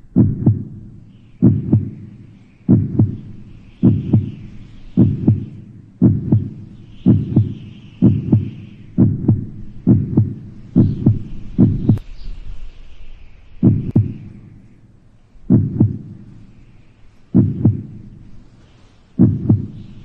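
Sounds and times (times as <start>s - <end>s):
heartbeat thumps: 0.0s - 12.0s, 13.6s - 14.7s, 15.5s - 16.6s, 17.3s - 18.4s, 19.2s - 20.0s
faint airy hiss: 0.0s - 20.0s.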